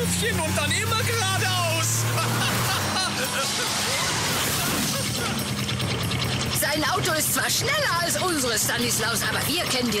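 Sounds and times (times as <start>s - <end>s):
cartoon car driving fast: 0.0s - 10.0s.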